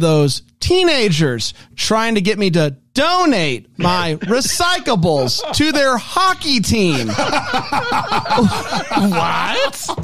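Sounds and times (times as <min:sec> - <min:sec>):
people speaking: 0:00.0 - 0:10.0
people laughing: 0:03.8 - 0:10.0.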